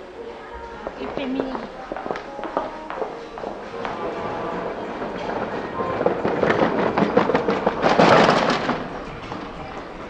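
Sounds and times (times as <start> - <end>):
cart wheels rattling over paving: 3.3 - 10.0.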